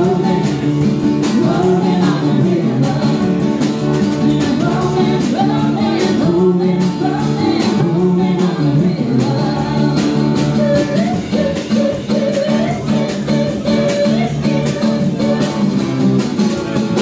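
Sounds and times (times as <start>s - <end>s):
live band playing: 0.0s - 17.0s
steady drum beat: 0.0s - 17.0s.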